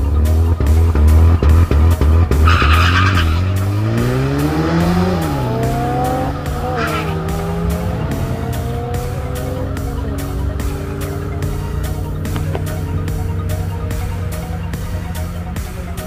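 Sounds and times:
background music: 0.0 - 16.0
drag car engines revving: 0.0 - 16.0
tyre squeal: 2.4 - 3.7, 6.6 - 7.3.

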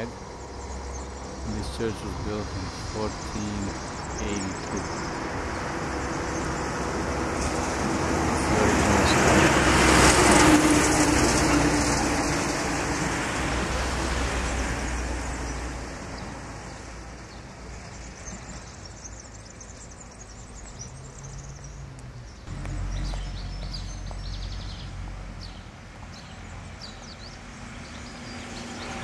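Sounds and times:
motor vehicle passing: 0.0 - 29.0.

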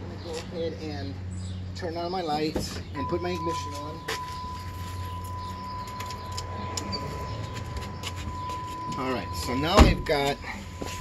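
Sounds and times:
low hum: 3.0 - 9.8
high electronic tone: 3.0 - 11.0.

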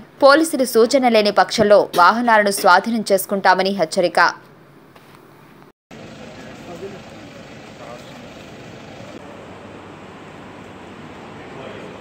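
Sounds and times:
street noise hiss: 4.5 - 12.0.

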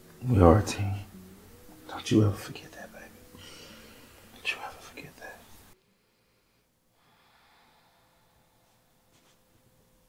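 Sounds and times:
faint steady background tone: 0.0 - 10.0
person whispering: 1.9 - 3.2, 4.4 - 5.5.

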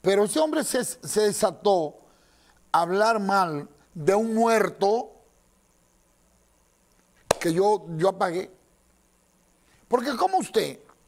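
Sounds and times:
man speaking: 7.3 - 8.6, 9.9 - 10.8.

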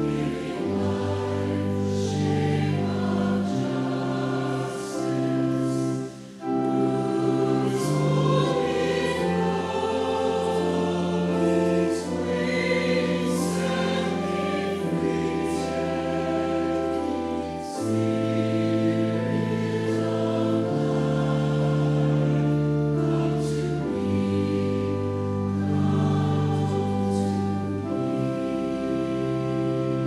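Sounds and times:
choir singing held chords: 0.0 - 30.0.

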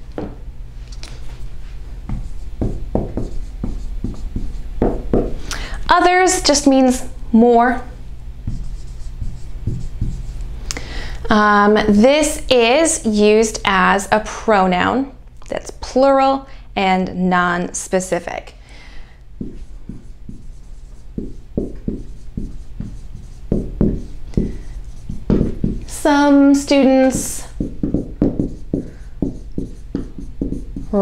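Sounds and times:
marker writing on whiteboard: 2.1 - 5.3, 8.5 - 10.4, 19.4 - 31.0.

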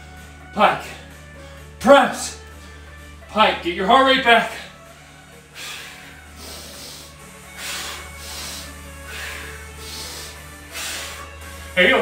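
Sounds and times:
background music: 0.0 - 12.0
man breathing hard: 0.9 - 1.8, 2.4 - 3.2, 4.7 - 11.8.

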